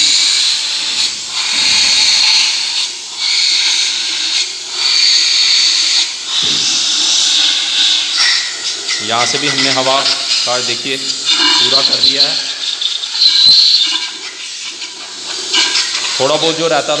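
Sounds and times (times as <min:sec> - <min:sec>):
compressed air blow gun hissing: 0:00.0 - 0:17.0.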